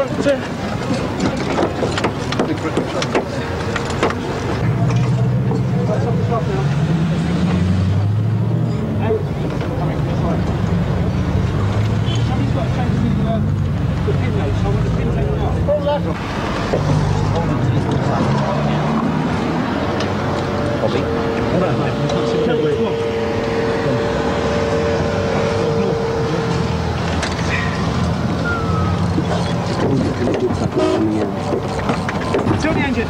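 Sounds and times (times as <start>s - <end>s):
indistinct voices: 0.0s - 33.0s
car engine running: 9.0s - 33.0s.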